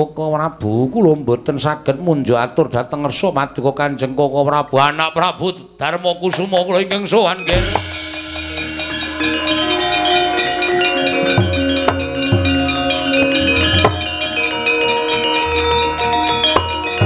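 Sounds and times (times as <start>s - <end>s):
struck metallophones: 7.3s - 17.0s
hand drum strokes: 7.5s - 17.0s
held gong tones: 7.5s - 17.0s
metallic clashes: 7.5s - 17.0s.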